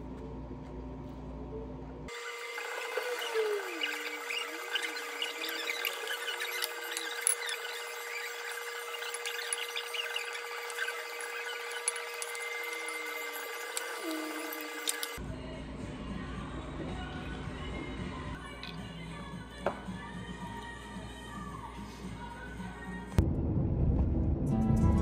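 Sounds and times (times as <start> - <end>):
wavering high-pitched tones: 2.6 - 15.2.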